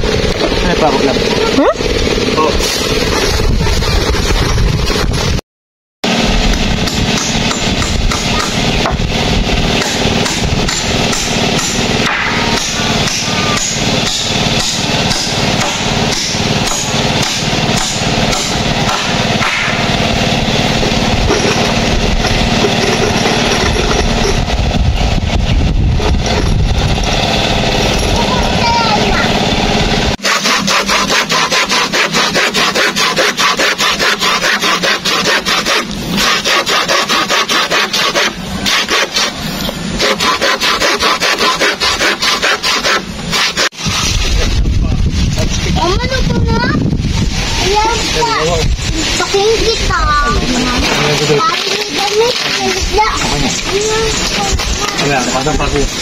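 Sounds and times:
work sounds: 0.0s - 5.4s, 6.0s - 56.0s
hand saw cutting wood: 6.1s - 24.4s, 26.0s - 44.5s, 47.6s - 56.0s.

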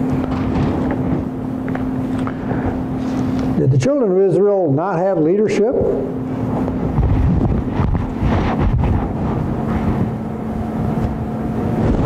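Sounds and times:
low electrical hum: 0.0s - 12.0s
low rumble: 5.8s - 12.0s.

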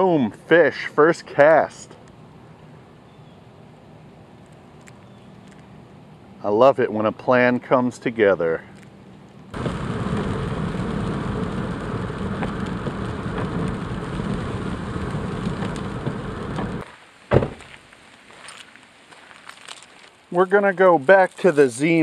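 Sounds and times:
tyre noise on wet road: 9.5s - 22.0s
rain pattering on a car: 9.6s - 22.0s
sharp knock: 17.3s - 17.7s.

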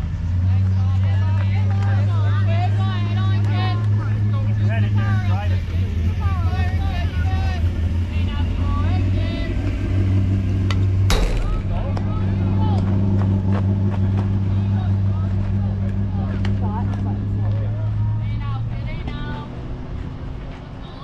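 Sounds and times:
engine humming: 0.0s - 21.0s.

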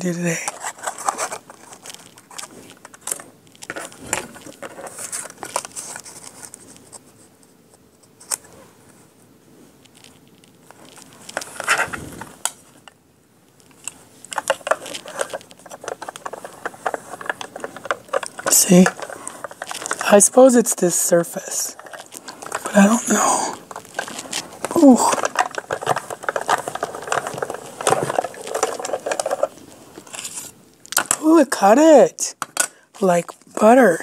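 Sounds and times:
paper rustling: 0.4s - 7.3s, 14.4s - 20.6s, 21.7s - 30.5s
scraping: 14.4s - 20.4s, 21.6s - 30.6s.

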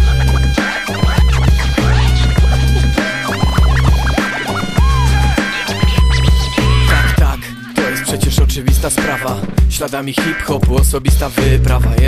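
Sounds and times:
turntable scratching: 0.0s - 11.4s
hip-hop beat with heavy bass: 0.0s - 12.0s.

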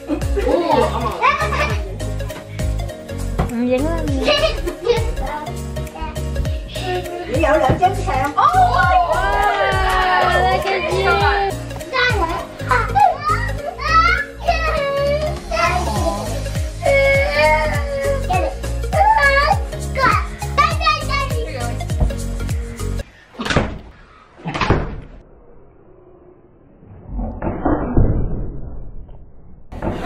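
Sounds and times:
background music with steady beat: 0.0s - 23.0s
children laughing and calling out: 0.1s - 2.0s, 4.1s - 7.3s, 8.3s - 21.8s
ball thudding: 7.6s - 8.0s.

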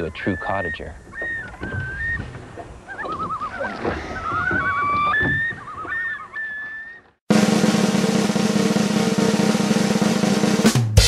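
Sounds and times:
loons calling: 0.0s - 7.2s.

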